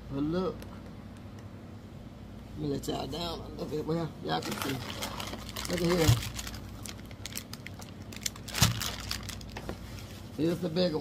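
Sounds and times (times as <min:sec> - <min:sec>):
bubble wrap crinkling: 0:04.3 - 0:10.4.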